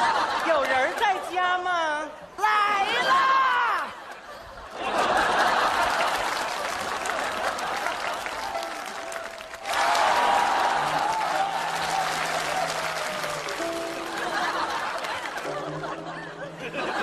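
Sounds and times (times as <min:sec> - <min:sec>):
audience applauding: 0:05.0 - 0:16.0
background music: 0:05.0 - 0:17.0.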